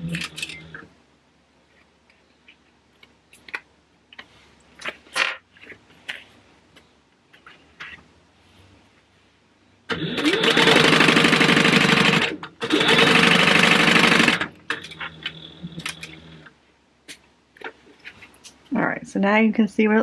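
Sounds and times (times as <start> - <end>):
sewing machine stitching fabric: 9.9 - 16.5.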